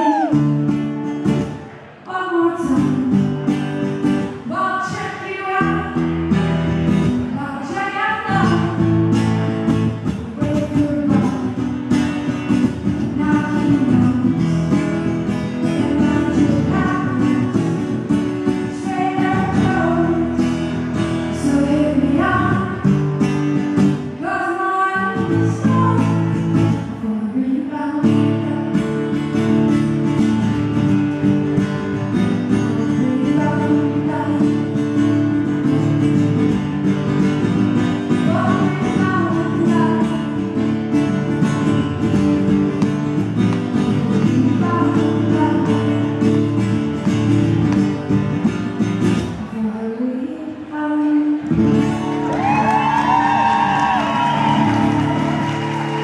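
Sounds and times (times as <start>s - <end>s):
woman singing into a microphone: 0.0s - 0.6s, 2.0s - 9.3s, 10.0s - 23.3s, 23.9s - 29.9s, 32.2s - 35.4s, 38.0s - 41.2s, 43.6s - 46.6s, 49.3s - 53.3s
strummed acoustic guitar: 2.6s - 27.2s, 28.0s - 49.6s.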